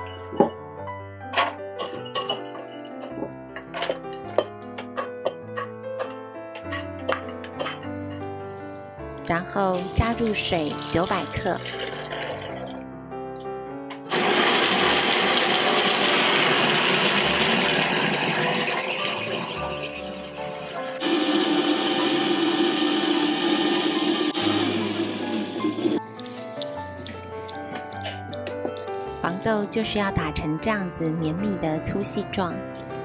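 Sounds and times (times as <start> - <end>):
blender grinding: 10.7 - 12.8, 14.1 - 26.0.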